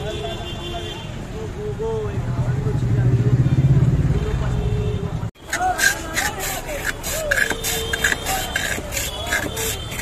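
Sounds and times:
street voices: 0.0s - 10.0s
ice scraped across a blade: 5.4s - 10.0s.

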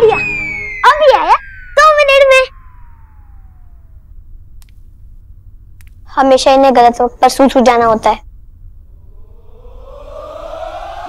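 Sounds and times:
tone gliding downward: 0.0s - 4.6s, 9.0s - 11.0s
low steady hum: 0.0s - 11.0s.

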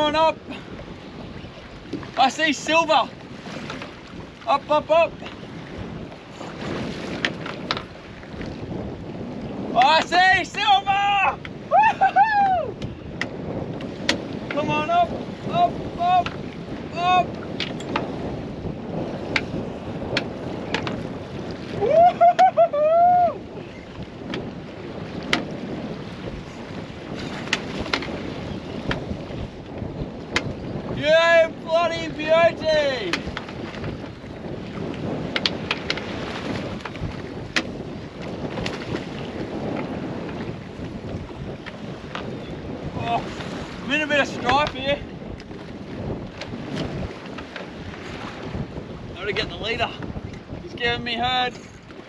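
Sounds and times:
choppy sea: 0.0s - 52.0s
wind on microphone: 0.0s - 52.0s.

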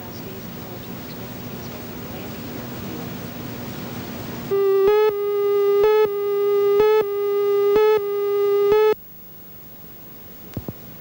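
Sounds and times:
faint hum: 0.0s - 11.0s
loud electronic tone: 4.5s - 9.0s.

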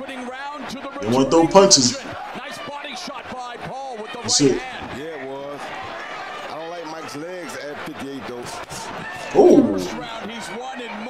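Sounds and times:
man talking: 1.0s - 2.0s, 4.3s - 4.7s, 9.4s - 10.2s
loud vocal burst: 9.4s - 10.2s.

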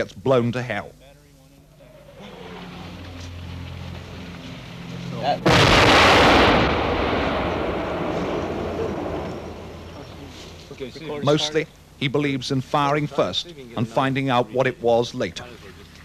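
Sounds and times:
low steady hum: 0.0s - 16.0s
artillery shell explosion: 5.4s - 10.0s.

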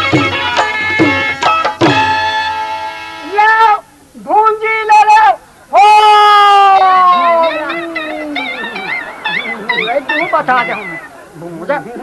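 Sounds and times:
person wailing with warbling pitch: 6.0s - 11.1s.

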